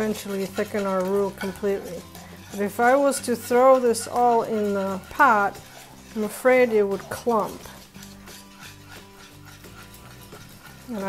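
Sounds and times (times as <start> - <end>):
whisk stirring in saucepan: 0.0 - 11.0.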